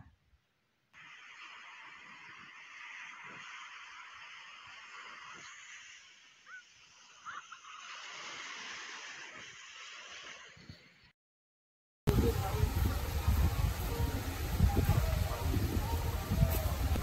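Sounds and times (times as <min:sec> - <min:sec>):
surf and wind hiss: 0:01.0 - 0:11.0, 0:12.1 - 0:17.0.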